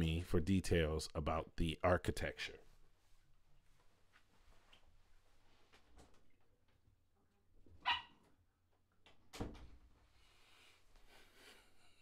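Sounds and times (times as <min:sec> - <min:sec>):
dog barking: 0:07.8 - 0:08.2.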